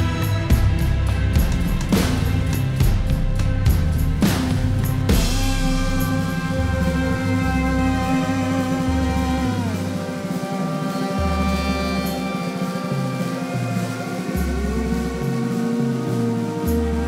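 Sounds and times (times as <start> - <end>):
live rock band instrumental: 0.0 - 17.0.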